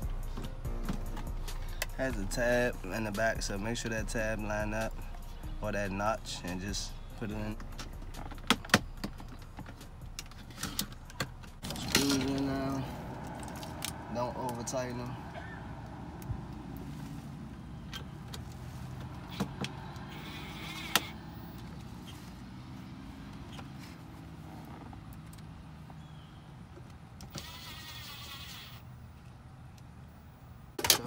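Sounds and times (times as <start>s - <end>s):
cordless driver whirring: 19.2s - 21.3s, 27.2s - 28.9s.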